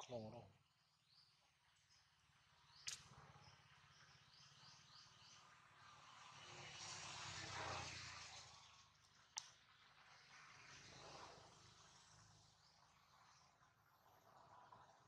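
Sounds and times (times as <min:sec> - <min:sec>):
sharp click: 0:02.8 - 0:03.1.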